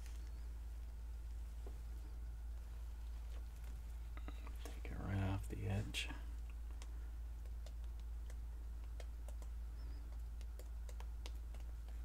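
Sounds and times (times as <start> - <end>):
low hum: 0.0 - 12.0
paint dripping clicks: 6.3 - 12.0.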